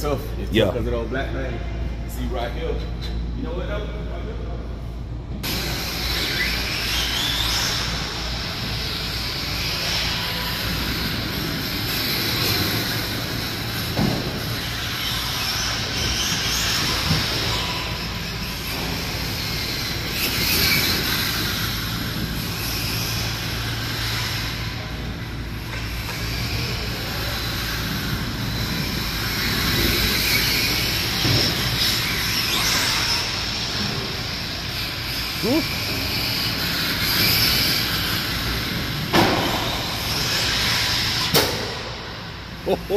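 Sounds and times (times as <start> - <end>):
steady low hum: 0.0 - 42.9
electric motors whining: 5.4 - 42.9.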